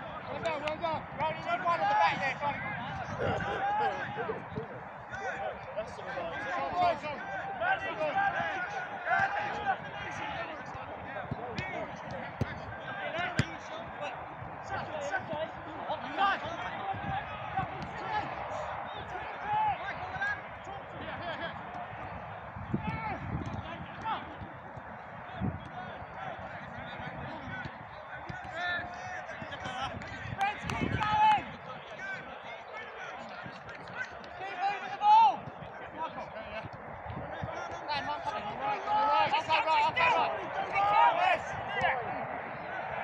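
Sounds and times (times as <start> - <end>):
footballers shouting: 0.0 - 43.0
football being kicked: 10.8 - 14.0, 17.6 - 18.0, 27.6 - 28.6.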